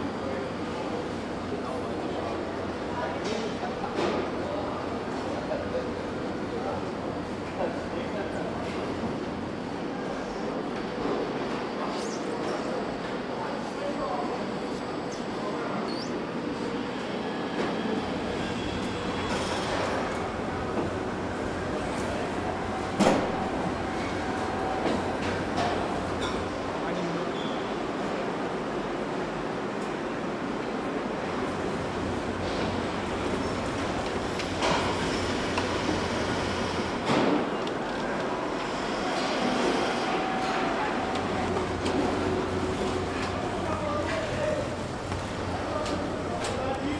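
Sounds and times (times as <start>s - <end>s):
machinery hum and hiss: 0.0s - 46.9s
assembly line machinery running: 38.3s - 46.9s.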